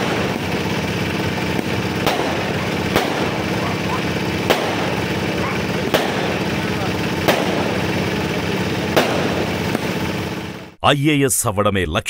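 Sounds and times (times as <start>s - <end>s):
firework bang: 0.0s - 10.5s
fireworks crackling: 0.0s - 10.8s.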